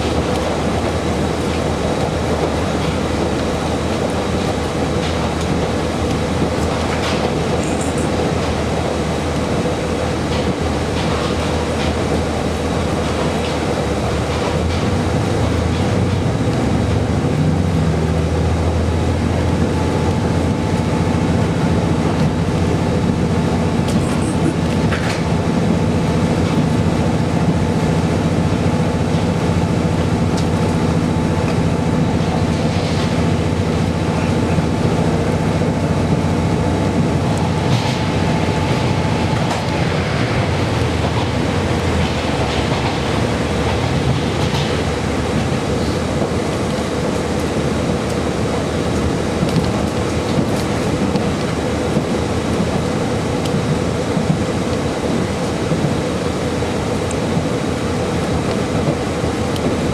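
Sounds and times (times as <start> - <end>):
diesel engine hum: 0.0 - 59.9
train wheel and rail noise: 0.0 - 59.9.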